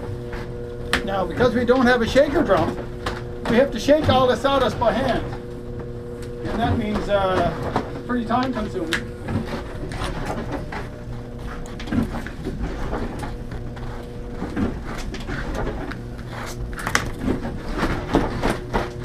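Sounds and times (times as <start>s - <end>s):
steady machine hum: 0.0s - 19.0s.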